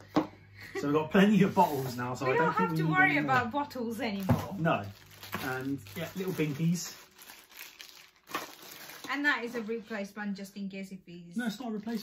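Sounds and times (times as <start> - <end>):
plastic packaging crinkling: 4.0 - 9.8.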